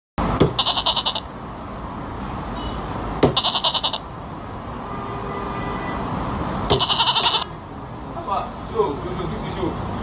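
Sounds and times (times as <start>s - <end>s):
quavering bleat: 0.6s - 1.3s, 3.3s - 4.1s, 6.7s - 7.5s.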